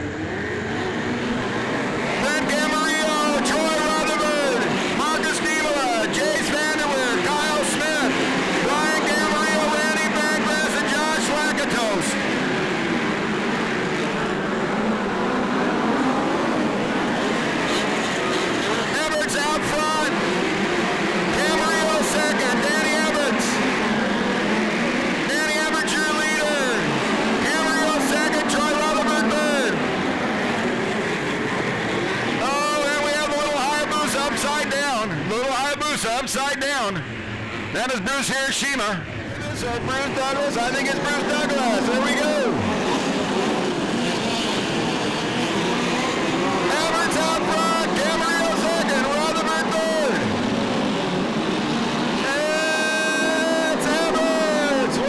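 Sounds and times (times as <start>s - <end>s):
race car engines at full throttle: 0.0s - 55.0s.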